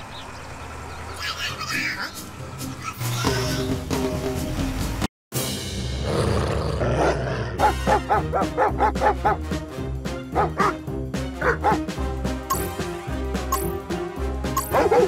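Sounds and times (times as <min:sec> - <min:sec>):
cartoon background music: 0:01.2 - 0:06.6, 0:07.6 - 0:15.0.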